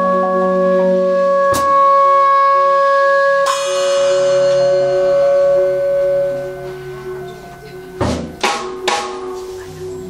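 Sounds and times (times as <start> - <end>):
saxophone long note: 0.0 - 8.5.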